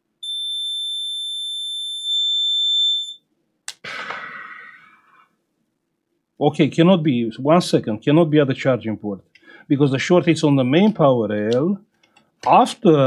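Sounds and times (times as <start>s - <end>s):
multimeter continuity beep: 0.2s - 3.2s.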